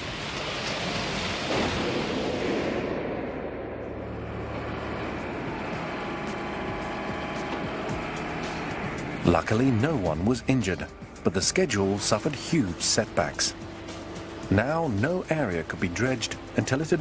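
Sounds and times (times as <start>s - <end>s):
music with long held tones: 3.4s - 17.0s.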